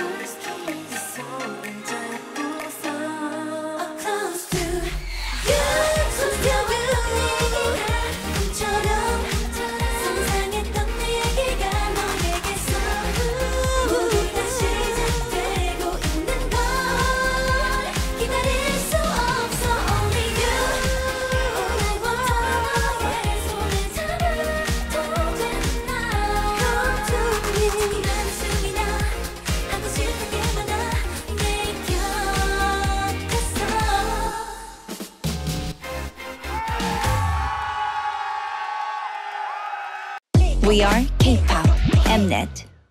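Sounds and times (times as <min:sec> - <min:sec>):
women singing together: 0:00.0 - 0:34.8
electronic pop backing track: 0:00.0 - 0:37.9.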